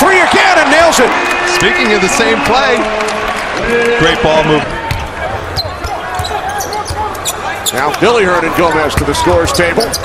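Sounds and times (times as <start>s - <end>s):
sneakers squeaking: 4.9s - 7.9s, 8.9s - 10.0s.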